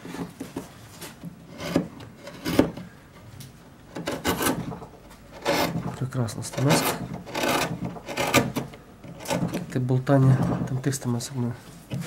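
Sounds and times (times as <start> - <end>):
carving gouge scraping wood: 1.4 - 2.8, 3.9 - 9.8.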